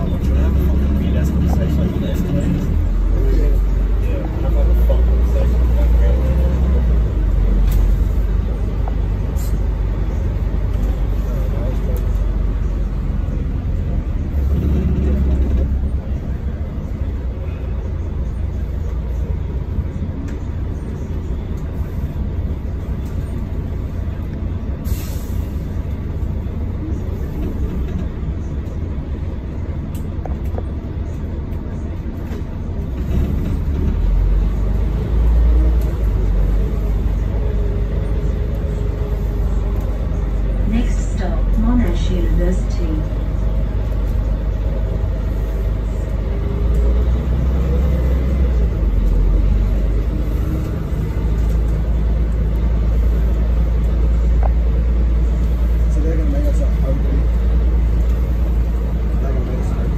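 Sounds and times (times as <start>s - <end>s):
bus engine low rumble: 0.0s - 59.9s
road noise: 0.0s - 59.9s.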